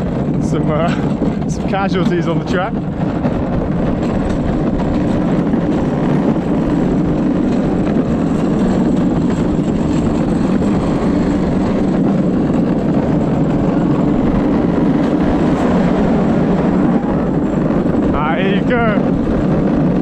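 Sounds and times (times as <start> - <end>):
cart wheels rolling on concrete: 0.0 - 20.0.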